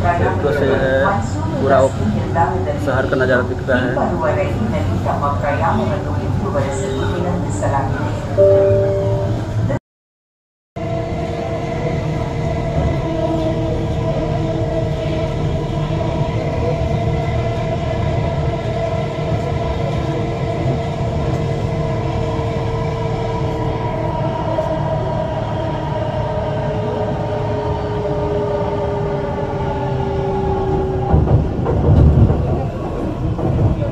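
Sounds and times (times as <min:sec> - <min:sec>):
train drive whine: 0:00.0 - 0:09.8
train running noise rumble: 0:00.0 - 0:09.8, 0:10.8 - 0:33.9.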